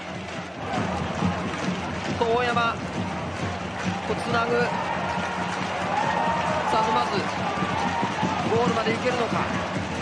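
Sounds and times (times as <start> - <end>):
stadium crowd noise: 0.0 - 10.0
man commenting on football: 2.1 - 2.8, 4.1 - 4.8, 6.6 - 7.4, 8.4 - 9.6.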